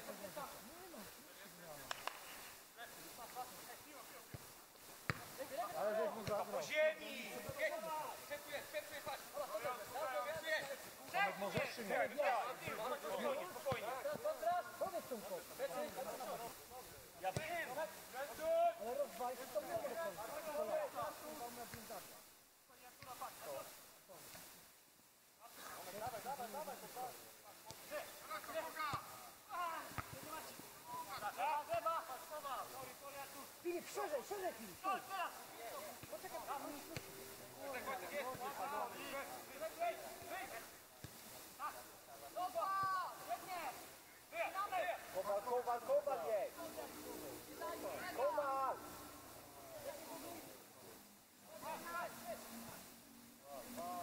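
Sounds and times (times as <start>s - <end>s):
men calling and talking outdoors: 0.0s - 54.0s.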